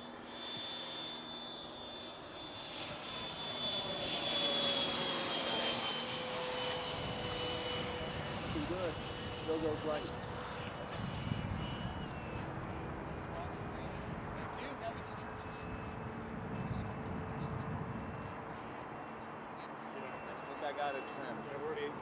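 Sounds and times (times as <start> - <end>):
air and field noise: 0.0 - 22.0.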